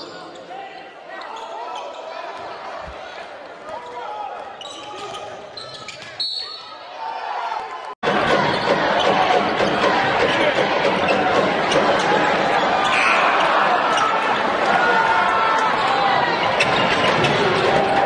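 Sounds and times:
crowd noise: 0:00.0 - 0:18.0.

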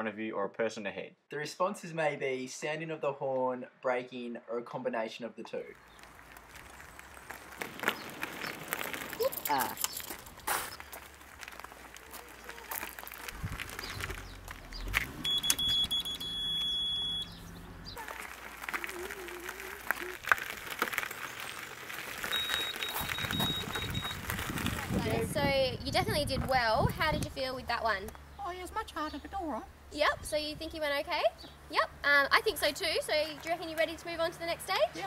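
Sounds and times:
electronic horn beeping: 0:15.2 - 0:17.5, 0:22.3 - 0:24.2.

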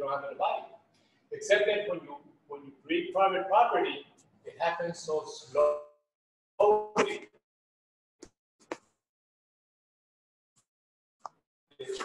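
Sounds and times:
man speaking: 0:00.0 - 0:06.0, 0:06.6 - 0:07.4, 0:11.8 - 0:12.0.

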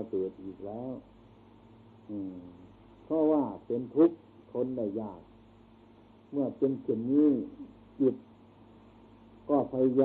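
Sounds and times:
man giving a sermon: 0:00.0 - 0:01.0, 0:02.1 - 0:05.2, 0:06.4 - 0:08.2, 0:09.5 - 0:10.0
faint recording hiss: 0:00.0 - 0:10.0.

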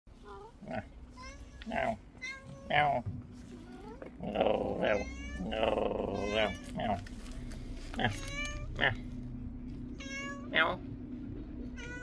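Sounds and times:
cat meowing: 0:04.8 - 0:07.0, 0:09.9 - 0:10.8, 0:11.8 - 0:12.0.

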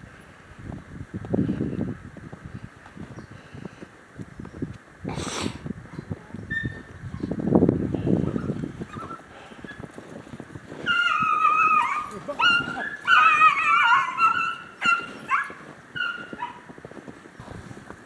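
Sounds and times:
low rustle: 0:00.0 - 0:13.7, 0:14.4 - 0:18.0
hounds baying: 0:08.2 - 0:10.0, 0:10.8 - 0:16.8.

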